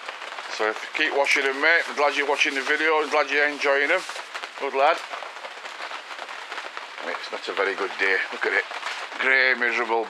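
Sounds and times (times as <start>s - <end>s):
rain pattering on a tarpaulin: 0.0s - 10.0s.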